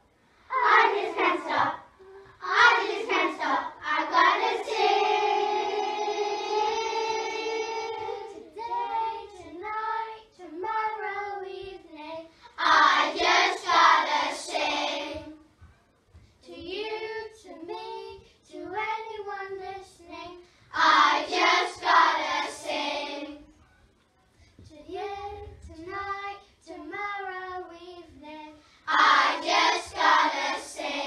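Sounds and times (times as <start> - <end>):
children singing together: 0.5 - 15.4, 16.6 - 23.4, 24.9 - 31.0.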